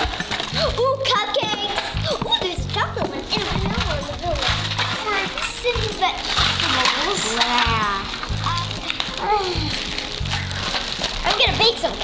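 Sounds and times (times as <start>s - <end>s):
background music with low beat: 0.0s - 12.0s
plastic bags crinkling: 0.0s - 12.0s
children's voices: 0.5s - 10.0s, 11.2s - 12.0s.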